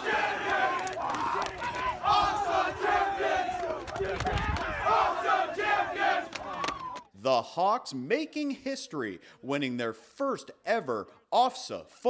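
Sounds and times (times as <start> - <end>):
young men shouting and cheering: 0.0 - 7.1.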